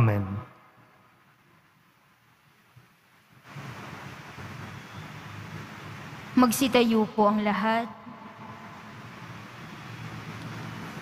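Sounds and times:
steady rushing hiss: 0.0 - 11.0.

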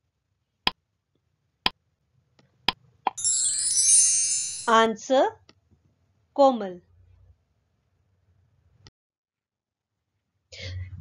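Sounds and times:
bright high shimmering chime: 3.2 - 4.9.

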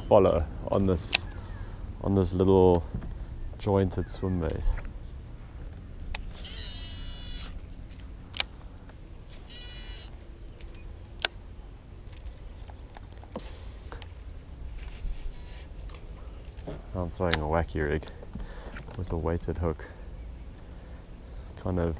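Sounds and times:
low steady hum: 0.0 - 21.9
fishing reel whirring: 6.3 - 7.6, 9.4 - 10.1.

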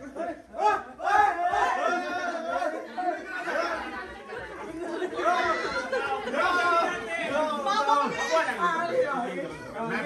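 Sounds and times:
people talking over one another: 0.0 - 10.0.

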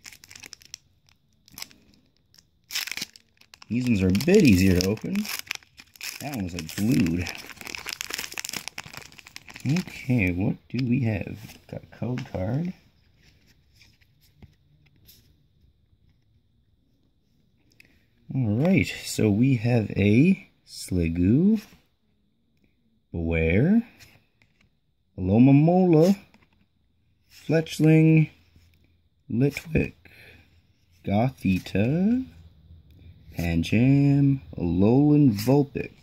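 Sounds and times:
foil wrapper crinkling: 0.0 - 10.1
trading cards clicking and rustling: 2.7 - 10.2.

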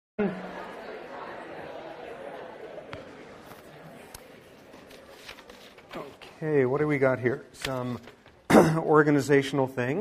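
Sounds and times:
many voices chattering: 0.2 - 10.0.

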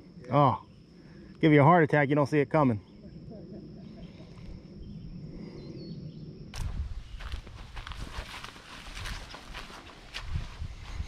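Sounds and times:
brush crackling and rustling: 6.6 - 10.6
footsteps through dry leaves: 6.6 - 11.0.

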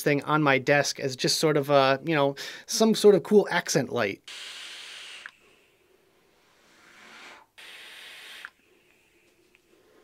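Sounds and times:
electronic cigarette hissing: 4.3 - 9.3.

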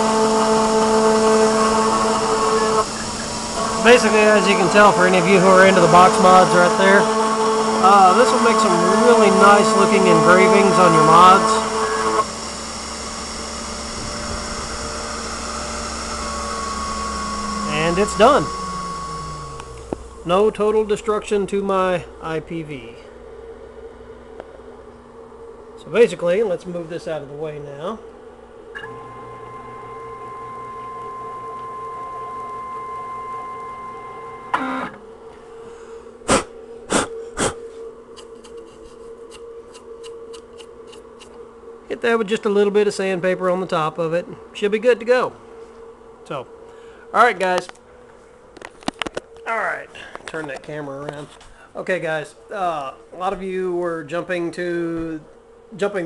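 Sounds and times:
router spindle whir: 0.0 - 21.2, 28.7 - 35.5
high steady tone: 0.0 - 23.1, 28.8 - 35.0
stepper motors whining: 0.0 - 24.5, 25.1 - 36.2
steady low hum: 0.0 - 56.0.

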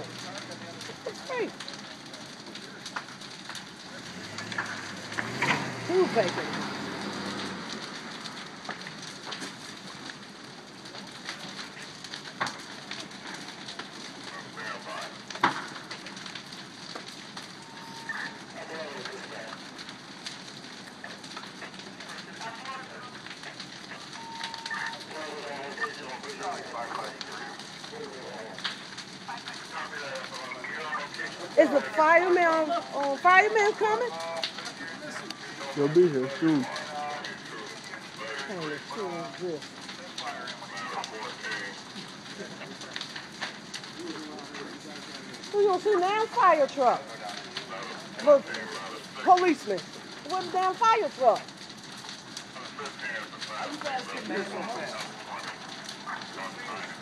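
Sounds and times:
burning timber cracking and popping: 0.0 - 57.0
fire rushing: 0.0 - 57.0.

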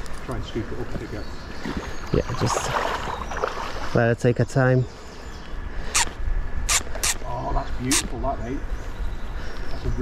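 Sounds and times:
wind rumble on microphone: 5.2 - 10.0
fishing reel drag zipping: 5.9 - 7.2.

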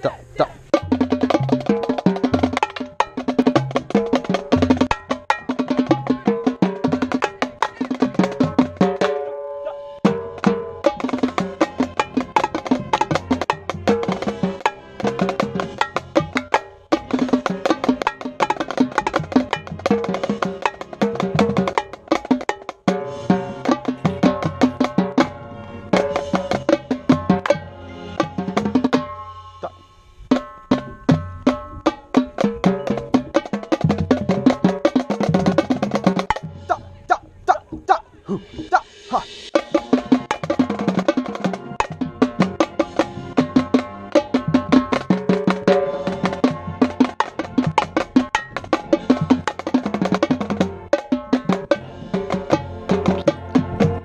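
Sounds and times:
marching tenor drums playing runs: 0.0 - 9.3, 10.0 - 29.2, 30.3 - 54.0.

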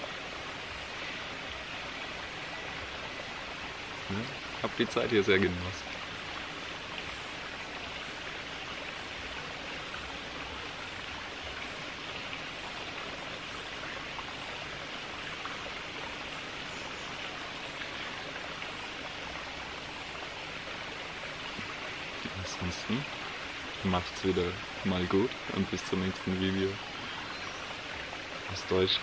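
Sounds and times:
soft rushing hiss: 0.0 - 29.0.

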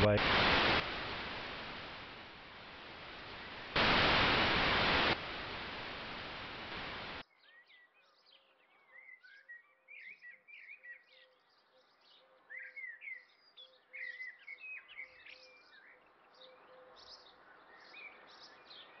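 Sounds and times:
tv static hiss: 0.0 - 7.2.

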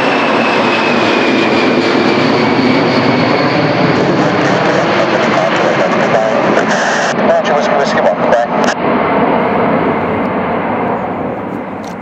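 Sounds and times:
jet engines at takeoff: 0.0 - 12.0.

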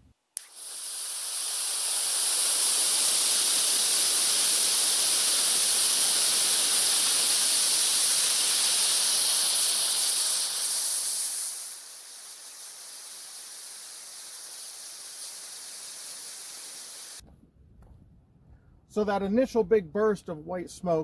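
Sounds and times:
rocket fuel burning with hiss: 0.4 - 17.2.

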